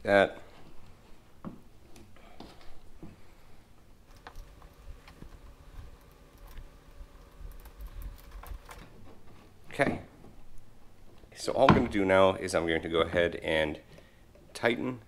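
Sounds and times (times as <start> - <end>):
faint steady hum: 0.0 - 15.0
plastic pulley and cable clicking: 4.1 - 8.9.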